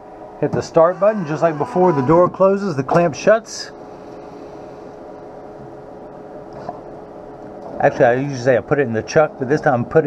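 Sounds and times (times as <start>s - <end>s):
machine humming: 0.0s - 9.9s.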